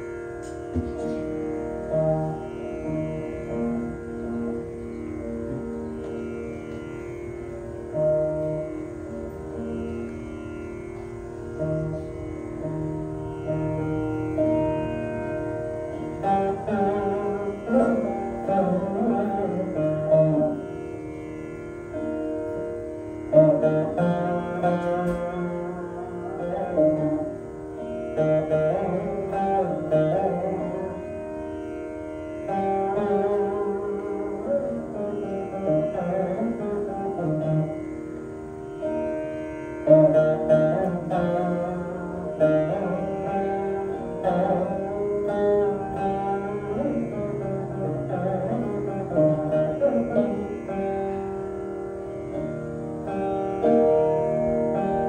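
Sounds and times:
plucked veena with drone strings: 0:00.0 - 0:55.0.

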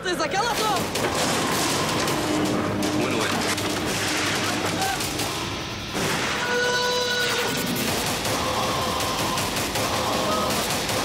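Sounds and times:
tense music: 0:00.2 - 0:11.0
rapid gunfire: 0:00.6 - 0:05.4, 0:07.4 - 0:11.0.

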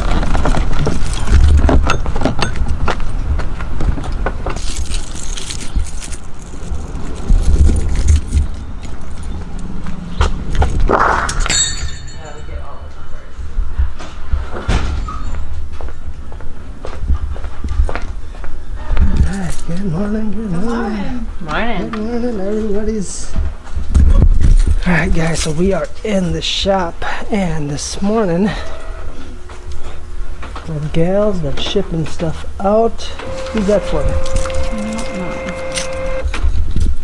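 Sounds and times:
microphone handling rumble: 0:00.0 - 0:11.5
footsteps and knocks: 0:00.0 - 0:12.0, 0:13.6 - 0:19.2.

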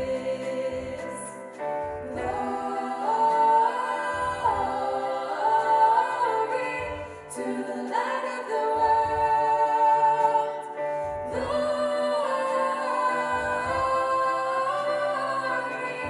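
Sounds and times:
women singing in close harmony: 0:00.0 - 0:16.0.

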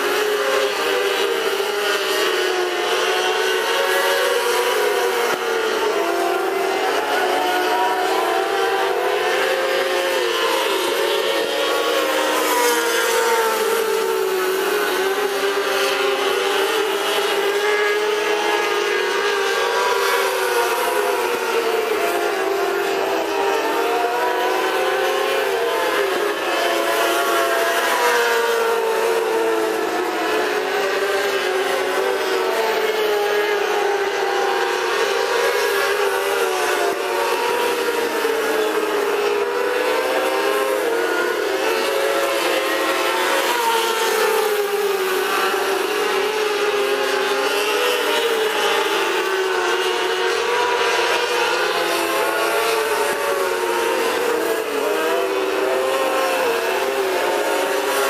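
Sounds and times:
racing car engines at high revs: 0:00.0 - 0:58.0.

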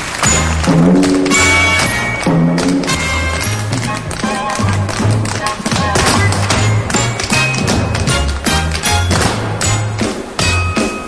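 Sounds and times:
percussive beat: 0:00.2 - 0:11.0
bass line: 0:00.5 - 0:03.9.

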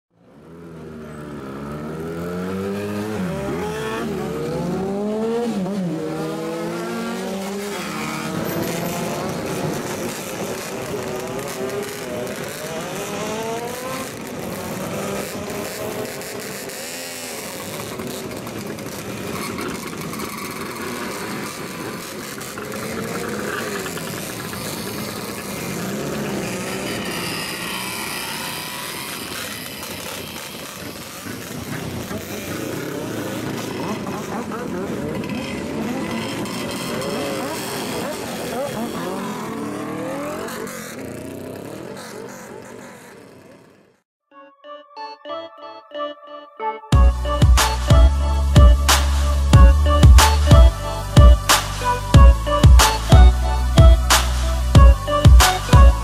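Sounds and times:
motorcycle engines revving: 0:00.2 - 0:44.0, 0:47.0 - 0:56.0.

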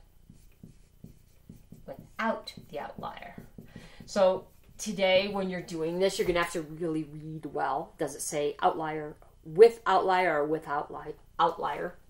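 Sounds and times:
marker writing on whiteboard: 0:00.0 - 0:06.6.

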